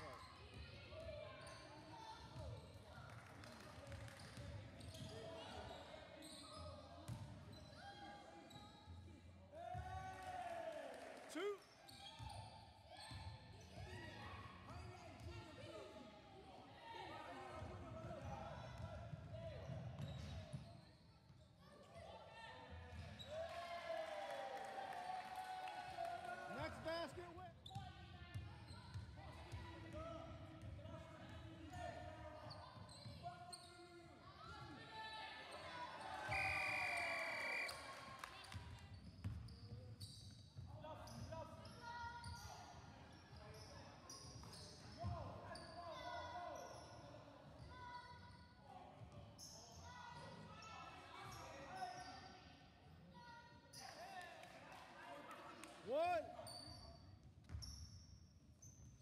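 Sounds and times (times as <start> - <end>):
players shouting and chatting: 21.8 - 38.3.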